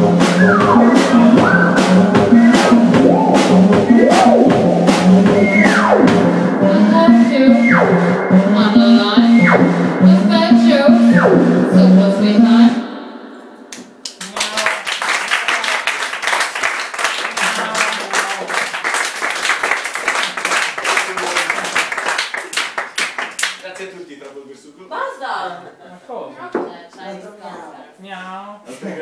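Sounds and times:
electronic music: 0.0 - 13.3
synth tone sweeping down: 0.0 - 13.3
audience applauding: 14.0 - 24.0.

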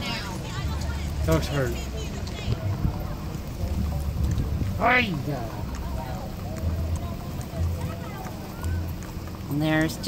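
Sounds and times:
wind buffeting microphone: 0.0 - 9.0
faint street ambience: 0.0 - 10.0.

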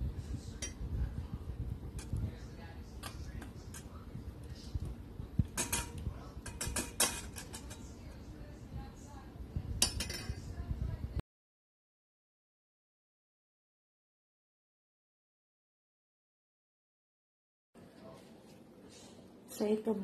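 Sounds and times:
utensil clinking in metal bowl: 4.8 - 8.2, 9.8 - 10.4.

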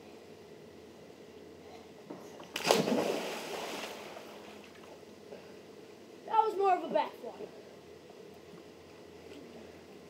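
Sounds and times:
person splashing into pool: 2.5 - 4.3
water sloshing: 2.6 - 4.7.

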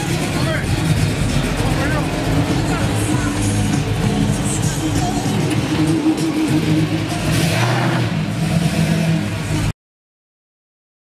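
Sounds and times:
car engine rolling past: 0.0 - 9.7
music: 0.0 - 9.7.

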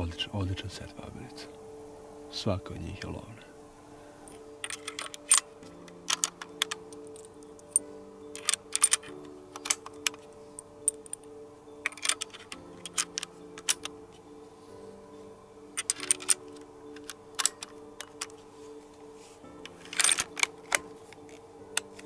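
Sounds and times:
soft background music: 0.0 - 22.0
metallic clicks loading magazine: 4.6 - 7.8, 8.4 - 10.2, 10.8 - 14.0, 15.8 - 18.4, 19.6 - 22.0.

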